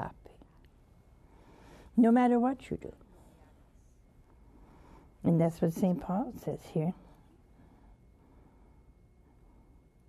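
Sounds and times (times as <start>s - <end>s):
low hum: 0.0s - 10.0s
elderly woman speaking: 2.0s - 3.0s, 5.2s - 7.1s.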